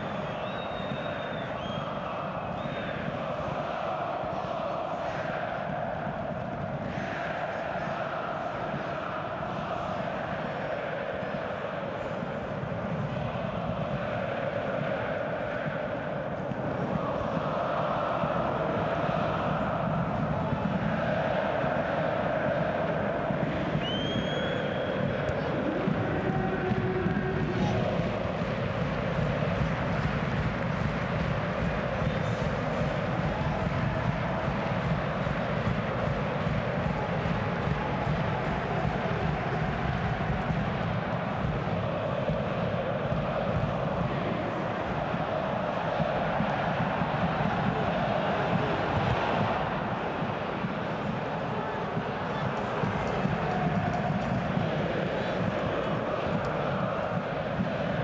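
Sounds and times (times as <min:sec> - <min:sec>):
stadium crowd singing and chanting: 0:00.0 - 0:58.0.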